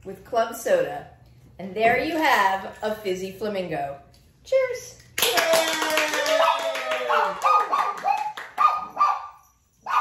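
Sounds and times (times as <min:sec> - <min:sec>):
clapping: 0:05.0 - 0:08.8.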